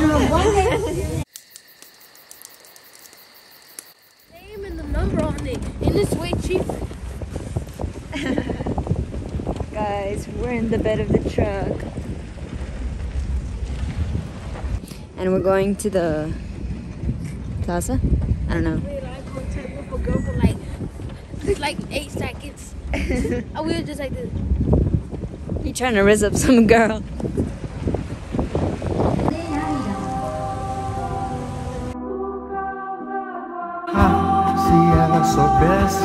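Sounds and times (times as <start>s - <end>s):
vehicle travel noise: 2.3s - 16.3s
wind buffeting microphone: 4.3s - 32.0s
music with held chords: 30.2s - 36.0s.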